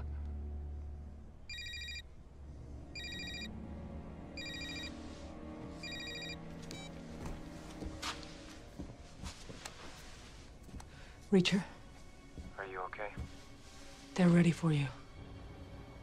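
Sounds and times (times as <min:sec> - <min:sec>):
low film score drone: 0:00.0 - 0:07.6
phone ringing with electronic trill: 0:01.5 - 0:02.0, 0:03.0 - 0:03.5, 0:04.4 - 0:04.9, 0:05.8 - 0:06.9.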